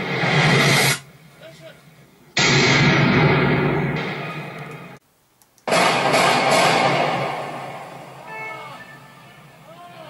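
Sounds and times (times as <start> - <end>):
rifle shot with echo: 5.7 - 7.9.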